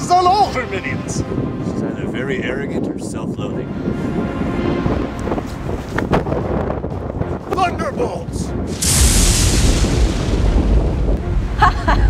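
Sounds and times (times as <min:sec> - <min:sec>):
magic spell rushing blast: 0:08.7 - 0:11.2.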